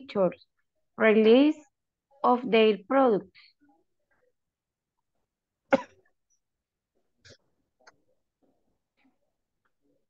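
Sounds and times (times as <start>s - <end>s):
person coughing: 5.7s - 6.1s.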